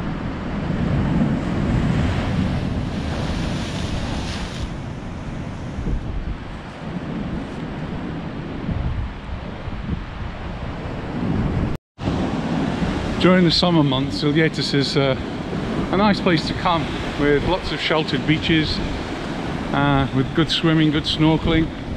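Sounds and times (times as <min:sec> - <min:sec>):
wind on microphone: 0:00.0 - 0:13.2, 0:15.0 - 0:21.9
surf breaking on rocks: 0:00.6 - 0:05.8.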